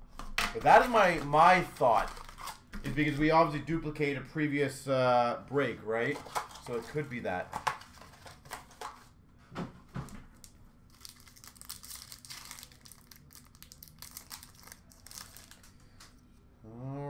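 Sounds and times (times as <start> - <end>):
cards being handled: 0.2 - 2.6
wrapper tearing and crinkling: 0.7 - 2.6, 10.9 - 15.8.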